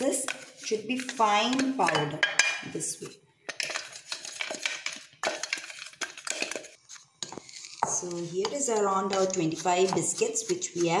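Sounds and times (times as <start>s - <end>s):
wooden spatula tapping and scraping: 0.0s - 11.0s.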